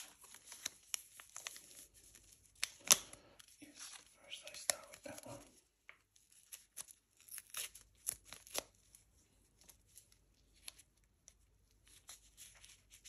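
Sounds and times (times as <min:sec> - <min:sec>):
sachets and gloves crinkling: 0:00.0 - 0:13.0.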